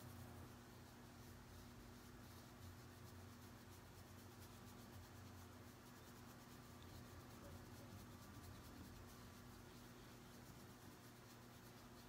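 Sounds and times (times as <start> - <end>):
low steady hum: 0.0 - 12.0
soft rubbing of makeup applicator: 0.0 - 12.0.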